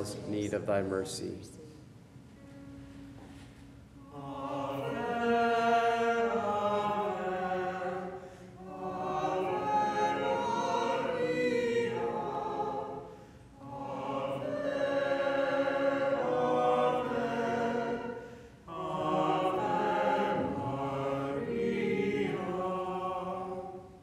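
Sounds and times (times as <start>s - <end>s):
choir singing a hymn: 4.0s - 24.0s.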